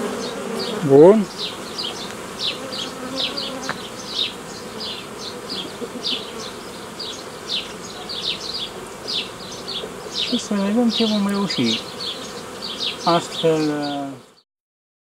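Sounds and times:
bee colony humming: 0.0 - 14.4
bees buzzing past: 0.0 - 14.4.

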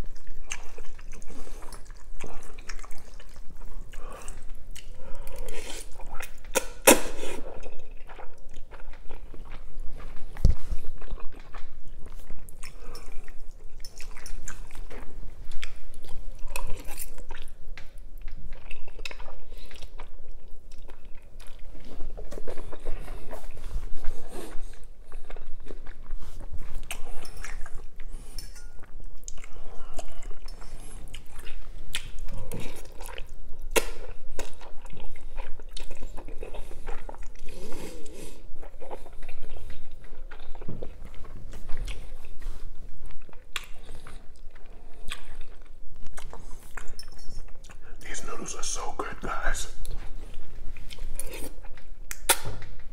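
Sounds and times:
chewing noodles: 0.0 - 52.9.

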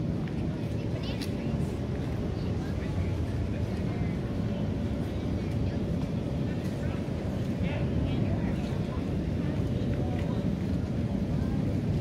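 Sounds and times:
faint voices of passers-by: 0.0 - 12.0
steady low street rumble: 0.0 - 12.0.

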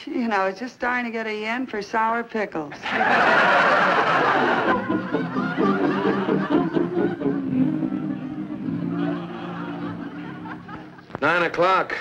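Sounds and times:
audience laughing loudly: 2.8 - 11.2
music bridge with held notes: 4.8 - 11.2.

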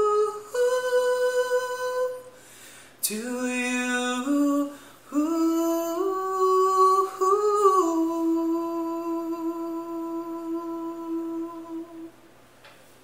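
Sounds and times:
man humming a held note: 5.2 - 12.2.

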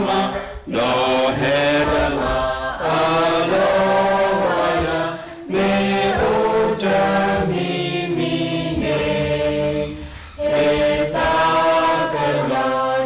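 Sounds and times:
voices singing in harmony: 0.0 - 13.0.

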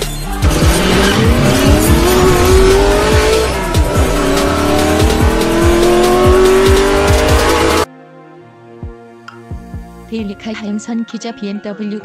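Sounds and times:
electronic beat music: 0.0 - 7.9
race car engine revving: 0.3 - 7.9.

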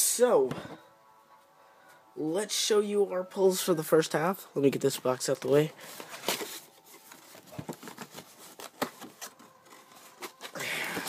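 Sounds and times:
paper rustling: 5.4 - 11.0.

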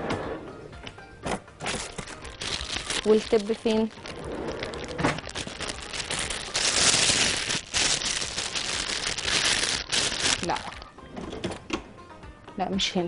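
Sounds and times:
plastic piping bag crinkling: 1.7 - 10.9.

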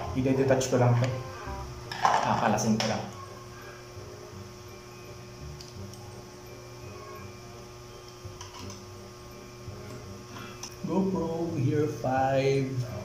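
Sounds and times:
electrical mains hum: 0.0 - 13.0.

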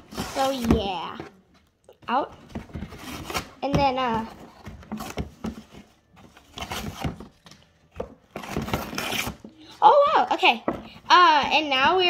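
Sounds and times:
cardboard and plastic tearing: 0.0 - 1.4, 2.5 - 9.6.

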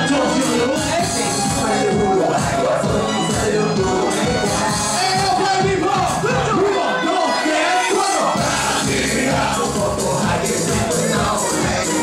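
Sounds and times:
dj beat with bass: 0.0 - 6.7, 8.2 - 12.0
crowd noise: 0.0 - 12.0
performer on a microphone: 0.0 - 12.0.

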